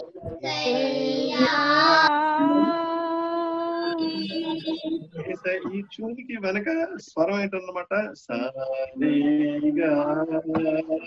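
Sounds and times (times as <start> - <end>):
person singing: 0.0 - 5.8, 8.4 - 11.0.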